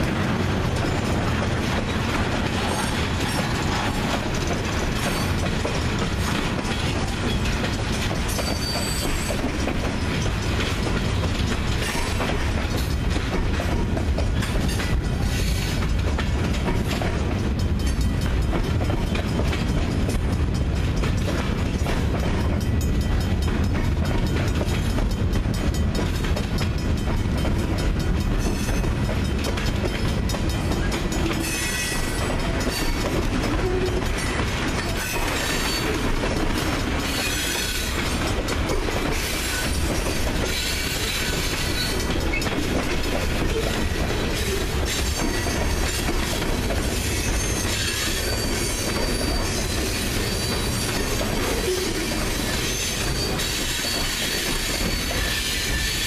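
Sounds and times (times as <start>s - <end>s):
rail joint clicks: 0.0s - 56.0s
steel wheels rumbling on rail: 0.0s - 56.0s
high-pitched wheel squeal: 47.0s - 56.0s.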